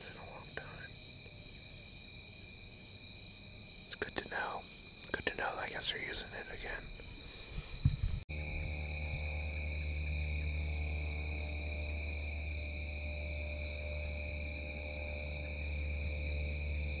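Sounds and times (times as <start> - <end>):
insect chirps: 0.0 - 17.0
insects trilling: 0.0 - 17.0
low steady hum: 7.2 - 17.0.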